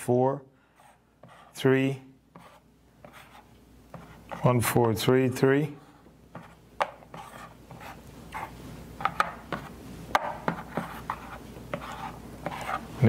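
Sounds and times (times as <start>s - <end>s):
soft rubbing scrapes: 9.5s - 13.0s.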